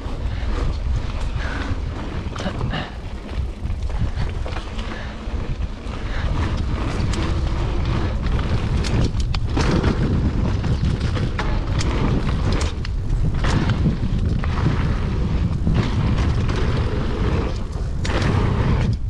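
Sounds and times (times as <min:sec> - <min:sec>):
bike rattling over bumps: 0:00.0 - 0:19.0
tyres rolling over dirt: 0:00.0 - 0:19.0
wind buffeting microphone: 0:00.0 - 0:19.0.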